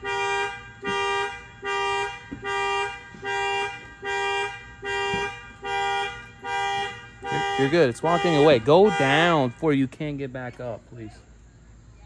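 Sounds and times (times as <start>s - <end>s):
car alarm horn honking: 0.0s - 10.4s.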